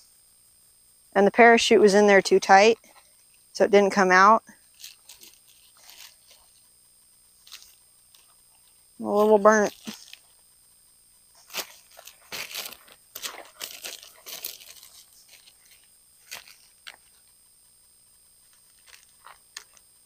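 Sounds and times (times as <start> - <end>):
plastic parachute crinkling: 4.7 - 6.4, 11.4 - 17.0.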